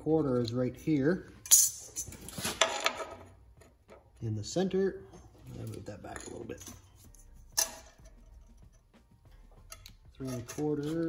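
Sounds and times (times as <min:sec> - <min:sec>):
metallic clink: 0:01.4 - 0:02.9.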